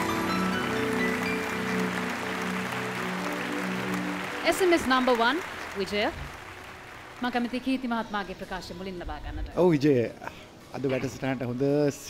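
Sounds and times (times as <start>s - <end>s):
audience applause: 0.0s - 8.6s.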